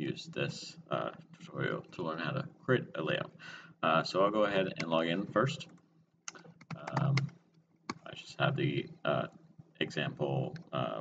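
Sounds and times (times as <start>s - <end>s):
computer keyboard clicking: 5.7s - 8.0s.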